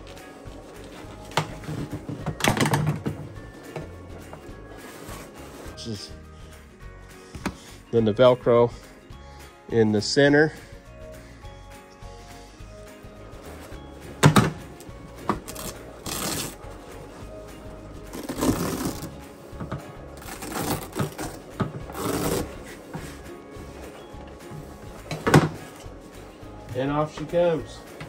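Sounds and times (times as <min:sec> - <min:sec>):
background music: 0:00.0 - 0:28.0
seat cover tearing off: 0:15.4 - 0:16.6, 0:18.1 - 0:19.2, 0:20.2 - 0:22.8
velcro strips ripping: 0:15.5 - 0:16.6, 0:18.1 - 0:19.1, 0:20.2 - 0:22.5.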